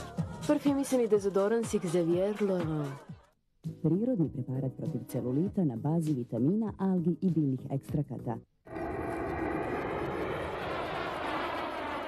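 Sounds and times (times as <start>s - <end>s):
rushing engine-like sound effect: 8.7s - 12.0s.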